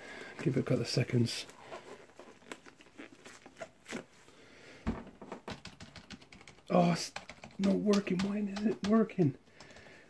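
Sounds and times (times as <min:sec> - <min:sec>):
fingers tapping keyboard keys: 0:05.5 - 0:10.0.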